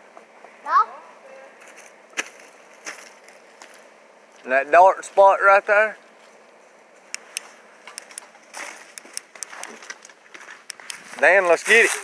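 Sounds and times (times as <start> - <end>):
crunching footsteps: 1.6 - 12.0.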